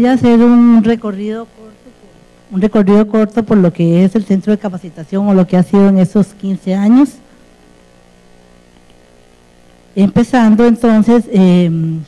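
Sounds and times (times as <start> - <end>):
woman's amplified voice: 0.0 - 7.2, 10.0 - 12.0
faint electrical hum: 0.0 - 12.0.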